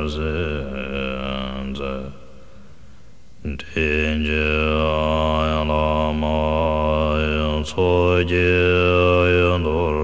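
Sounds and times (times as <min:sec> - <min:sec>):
deep-voiced chanting: 0:00.0 - 0:02.5, 0:03.4 - 0:10.0
breath: 0:02.3 - 0:03.3.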